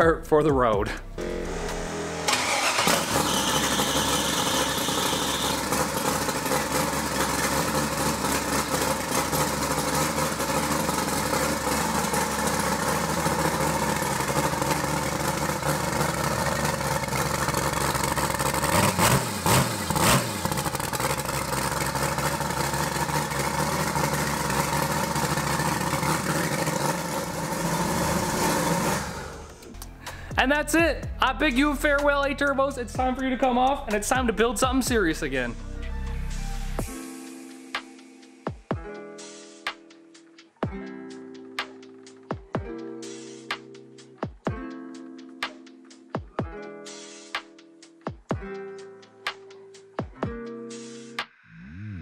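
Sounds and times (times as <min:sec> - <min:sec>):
car engine starting: 0:00.9 - 0:30.4
engine revving: 0:01.0 - 0:29.8
unmuffled engine idling: 0:01.0 - 0:30.0.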